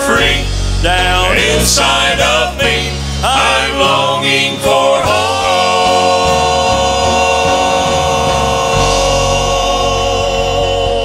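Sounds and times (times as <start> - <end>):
male vocal quartet singing: 0.0 - 11.0.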